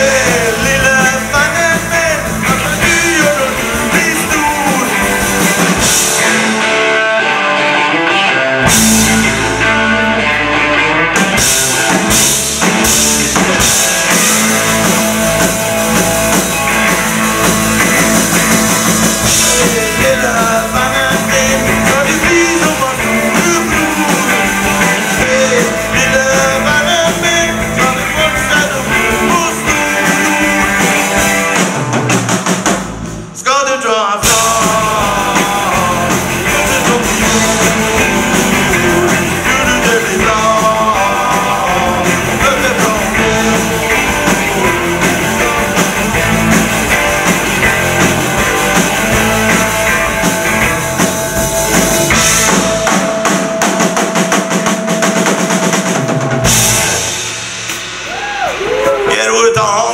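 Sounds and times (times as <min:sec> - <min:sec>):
man singing: 0:00.0 - 0:06.9, 0:12.8 - 0:15.6, 0:19.1 - 0:31.6, 0:33.4 - 0:46.5, 0:58.8 - 0:59.9
electric guitar: 0:00.0 - 0:33.4, 0:34.2 - 0:59.9
bass guitar: 0:00.0 - 0:59.9
drum kit: 0:00.0 - 0:59.9.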